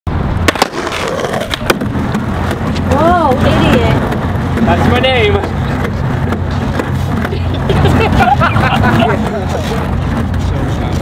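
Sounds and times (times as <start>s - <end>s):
skateboard wheels rolling on stone: 0.2s - 11.0s
skateboard clacking on ground: 0.4s - 7.6s.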